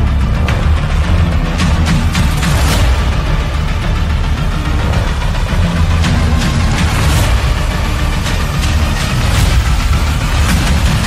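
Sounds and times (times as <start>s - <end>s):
engine droning under load: 0.0s - 11.0s
soundtrack music: 0.0s - 11.0s.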